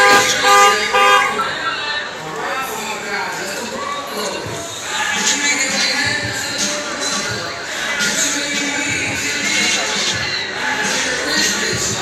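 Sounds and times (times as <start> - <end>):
car horn honking: 0.0 - 1.6.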